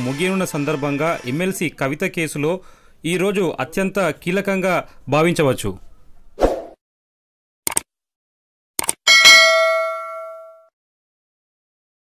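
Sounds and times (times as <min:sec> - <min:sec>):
metallic notification ding: 0:09.1 - 0:10.7.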